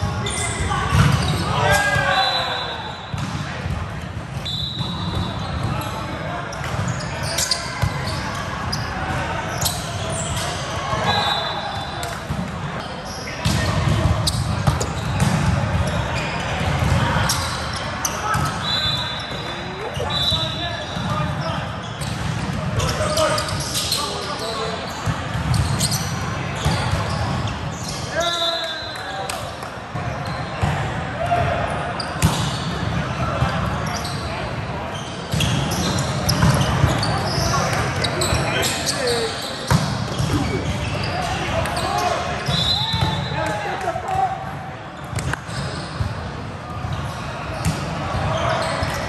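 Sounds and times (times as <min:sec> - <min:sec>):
shrill shoe squeaks: 0:06.9 - 0:08.8, 0:25.5 - 0:29.0
players calling out: 0:37.0 - 0:43.4.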